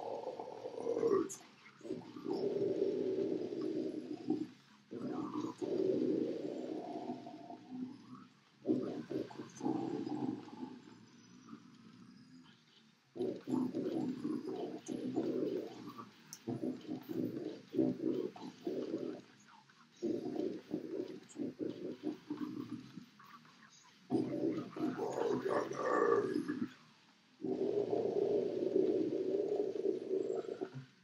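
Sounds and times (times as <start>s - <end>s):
death metal growling vocals: 0.0s - 8.0s, 13.2s - 19.2s, 20.0s - 23.4s, 24.1s - 26.8s, 27.4s - 30.8s.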